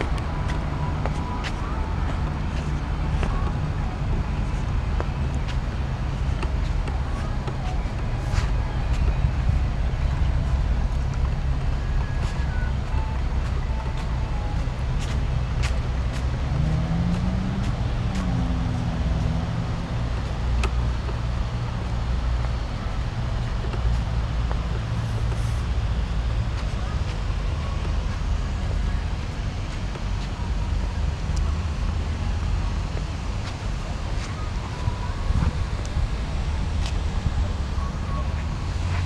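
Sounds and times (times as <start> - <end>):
road traffic rumble: 0.0 - 39.0.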